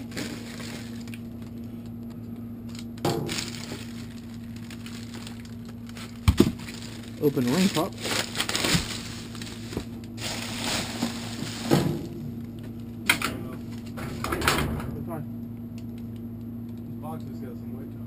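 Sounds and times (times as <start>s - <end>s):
plastic bags rustling: 0.0s - 1.8s, 2.7s - 12.8s.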